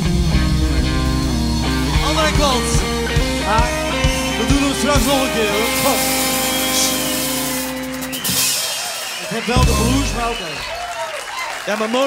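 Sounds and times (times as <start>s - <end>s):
drum and cymbal strokes: 9.6s - 10.8s
blues band chord ringing: 9.6s - 10.9s.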